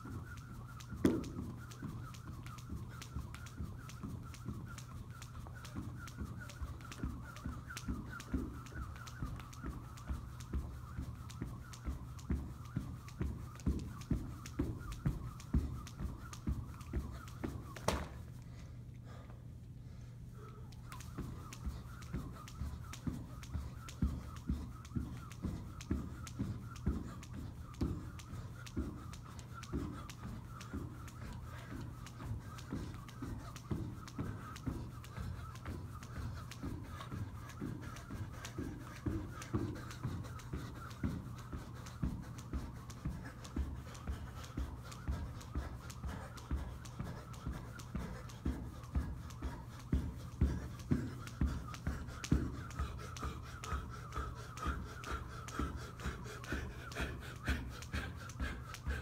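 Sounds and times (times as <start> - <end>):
jump rope thumps on carpet: 0.0 - 18.4, 20.8 - 59.0
steady low hum: 0.0 - 59.0.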